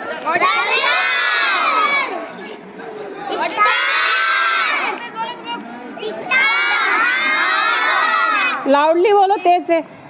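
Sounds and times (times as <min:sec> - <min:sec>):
young children shouting: 0:00.3 - 0:02.2, 0:03.3 - 0:05.0, 0:06.0 - 0:08.7.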